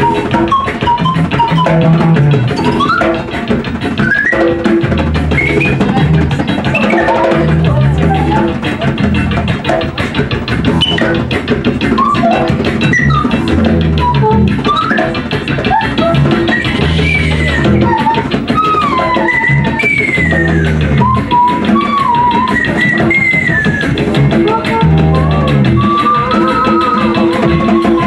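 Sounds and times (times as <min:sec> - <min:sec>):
drum kit playing: 0:00.0 - 0:28.0
plucked double bass: 0:00.0 - 0:28.0.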